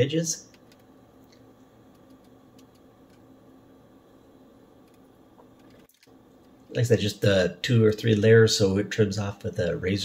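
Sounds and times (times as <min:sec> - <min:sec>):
low steady shop hum: 0:00.0 - 0:10.0.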